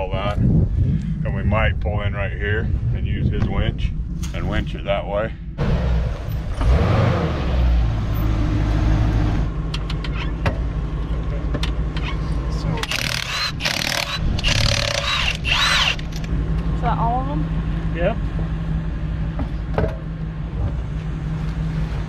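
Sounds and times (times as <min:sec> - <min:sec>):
vehicle engine running: 0:03.9 - 0:22.0
impact wrench bursts: 0:12.8 - 0:16.3.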